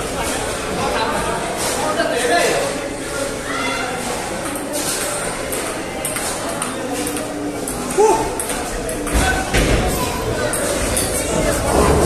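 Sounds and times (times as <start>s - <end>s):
background chatter: 0.0s - 12.0s
ping-pong ball clicking off paddles: 5.5s - 9.3s.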